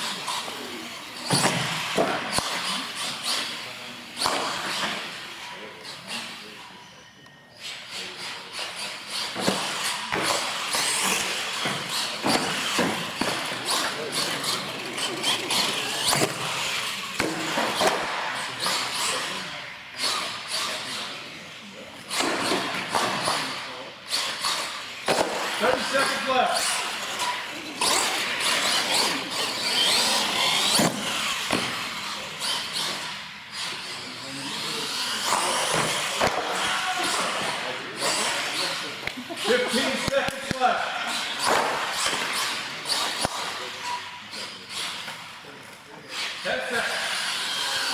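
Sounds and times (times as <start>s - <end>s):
toy truck motor whining: 0.0s - 40.2s, 46.1s - 47.9s
people talking in echoing hall: 0.0s - 47.9s.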